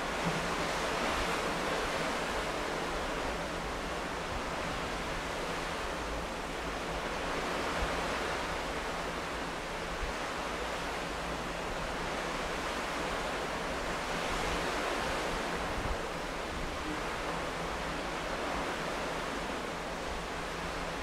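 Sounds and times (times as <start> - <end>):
water rushing in ferry wake: 0.0 - 21.0
wind: 0.0 - 21.0.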